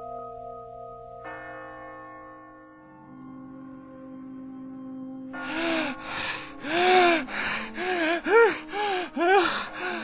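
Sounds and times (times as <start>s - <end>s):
man gasping and panting: 5.4s - 10.0s.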